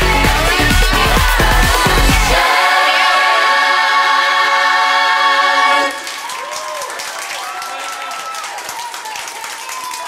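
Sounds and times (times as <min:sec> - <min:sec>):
group singing a chord: 0:00.0 - 0:06.2
excited shouts and cheers: 0:06.0 - 0:10.0
scattered clapping: 0:06.0 - 0:10.0.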